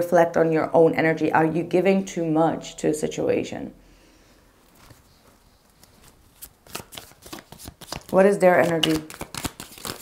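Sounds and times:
cards being shuffled: 0:05.8 - 0:10.0
sharp card clacks: 0:06.4 - 0:10.0.

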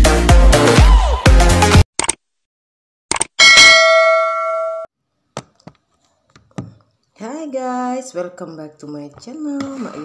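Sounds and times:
notification bell ding: 0:03.4 - 0:04.9.

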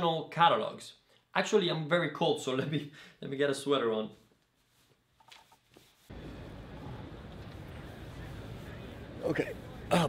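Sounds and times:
city background rumble: 0:06.1 - 0:10.0.

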